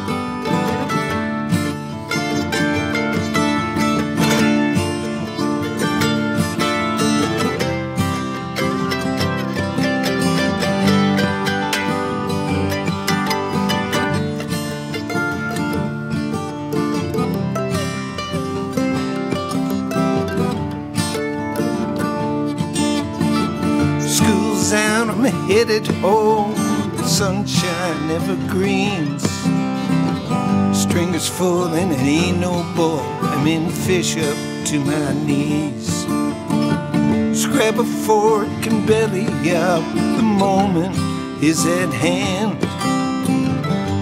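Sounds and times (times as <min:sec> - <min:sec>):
acoustic guitar picking: 0:00.0 - 0:44.0
country music instrumental: 0:00.0 - 0:44.0.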